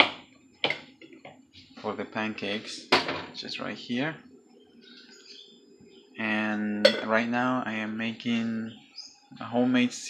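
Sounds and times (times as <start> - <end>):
kitchenware knocking: 0.0 - 0.9, 2.9 - 3.4, 6.8 - 7.2
person speaking: 1.8 - 4.2, 6.2 - 8.7.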